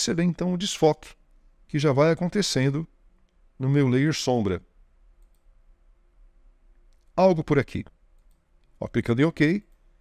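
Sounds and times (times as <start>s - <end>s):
computer mouse clicks: 5.2s - 5.5s, 8.2s - 8.8s.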